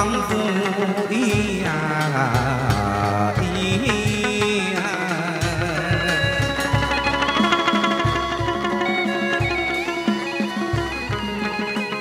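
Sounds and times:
plucked lute notes: 0.0s - 12.0s
sustained accompaniment: 0.0s - 12.0s.

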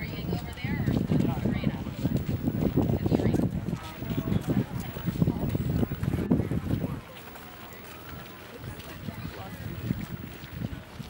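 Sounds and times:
faint indistinct voices: 0.0s - 11.0s
outdoor background noise: 0.0s - 11.0s.

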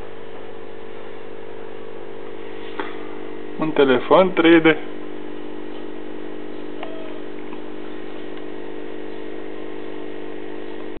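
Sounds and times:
low hum of held tones: 0.0s - 11.0s.

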